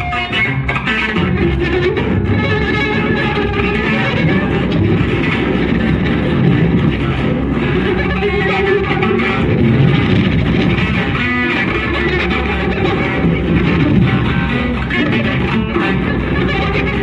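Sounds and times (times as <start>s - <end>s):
electric guitars playing: 0.0s - 17.0s
ringing guitar note: 0.0s - 17.0s.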